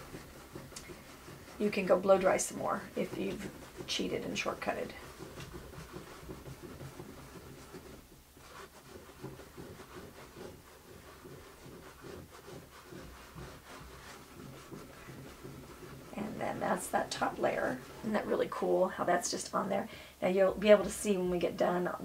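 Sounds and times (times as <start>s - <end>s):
paper towel rubbing wet paper: 0.0s - 19.6s.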